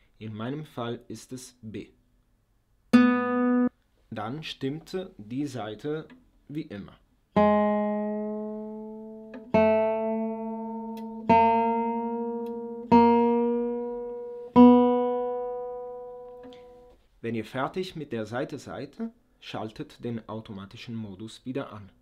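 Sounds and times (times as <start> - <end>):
guitar string plucked: 7.4 - 16.8.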